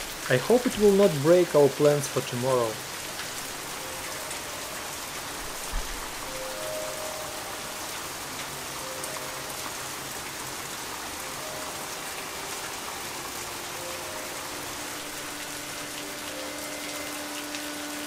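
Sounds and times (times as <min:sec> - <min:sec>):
heavy rain on wooden deck: 0:00.0 - 0:18.0.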